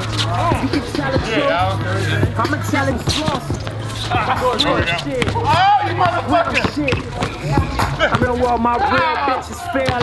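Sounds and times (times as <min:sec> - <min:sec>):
players calling out: 0:00.0 - 0:10.0
basketball bouncing on hard court: 0:05.2 - 0:09.2.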